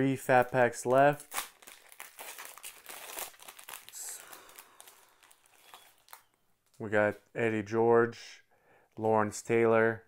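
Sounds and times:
foil wrapper crinkling: 0:00.3 - 0:06.8.

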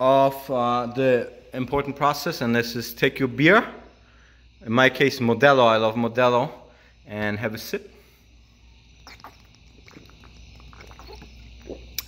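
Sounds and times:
gulps and swallows: 0:08.9 - 0:12.0.

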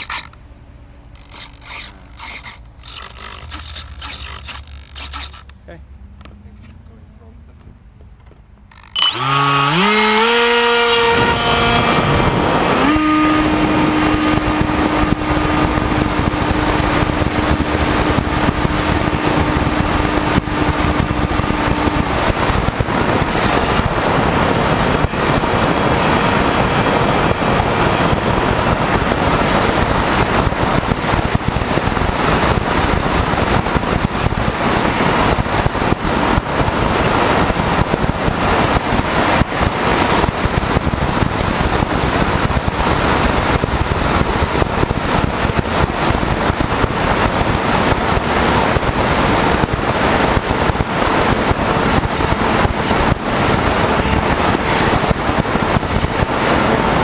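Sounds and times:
electric motor and propeller whine: 0:00.0 - 0:05.7, 0:08.7 - 0:57.0
loud rushing airflow: 0:09.0 - 0:57.0.

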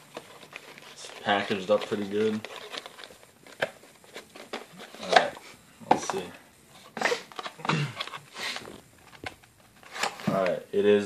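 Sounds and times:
cardboard rustling: 0:00.0 - 0:10.6.

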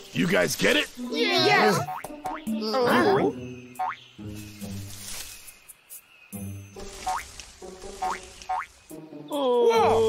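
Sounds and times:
cartoon music: 0:01.1 - 0:04.0.

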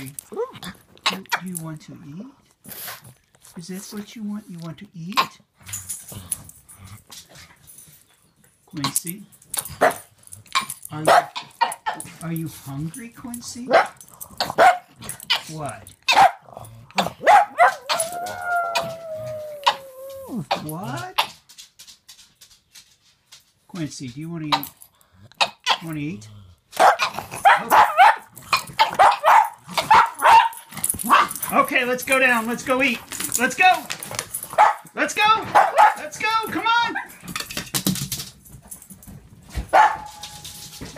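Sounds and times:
person speaking: 0:00.0 - 0:02.4, 0:12.0 - 0:13.9, 0:17.5 - 0:21.2, 0:31.0 - 0:34.0, 0:34.9 - 0:37.2
dog making throaty noises: 0:00.0 - 0:03.6, 0:13.8 - 0:21.5, 0:24.4 - 0:36.1.

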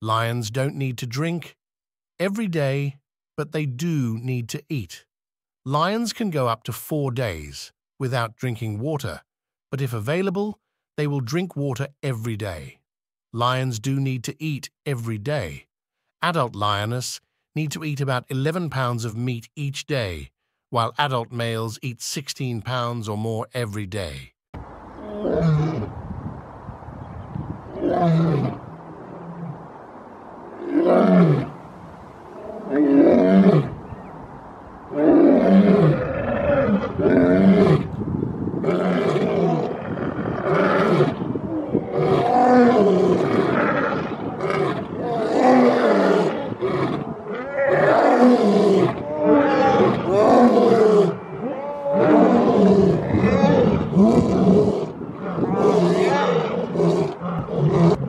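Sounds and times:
lions roaring: 0:25.0 - 0:25.9, 0:27.7 - 0:29.6, 0:32.3 - 0:33.8, 0:34.9 - 0:37.9, 0:38.6 - 0:58.0.

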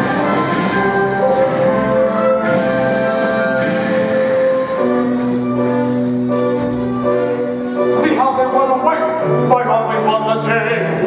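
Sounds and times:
orchestra holding chords: 0:00.0 - 0:11.0.

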